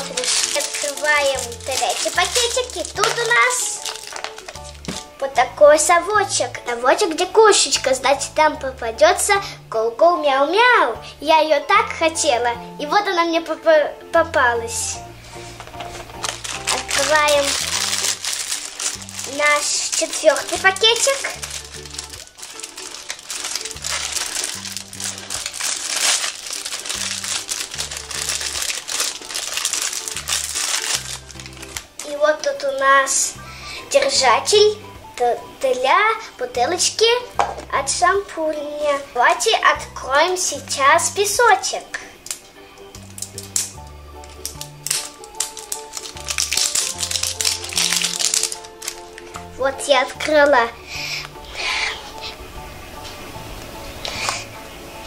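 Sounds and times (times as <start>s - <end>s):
wrapper crinkling and tearing: 0.0s - 5.2s, 15.3s - 32.8s, 42.2s - 50.3s.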